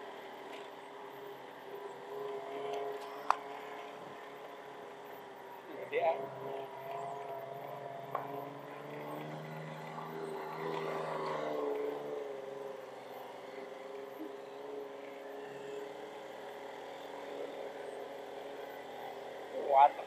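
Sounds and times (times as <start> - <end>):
vehicle engine driving: 0.0 - 20.0.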